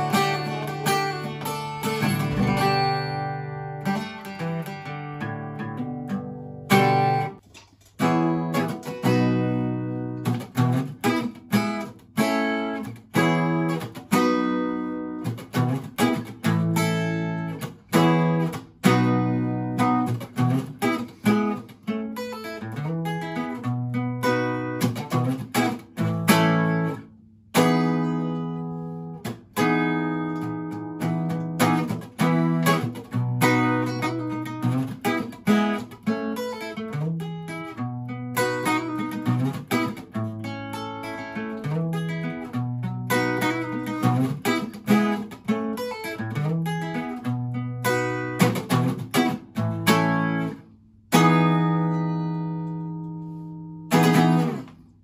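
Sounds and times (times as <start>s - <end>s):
acoustic guitar chords strummed: 0.0s - 55.0s.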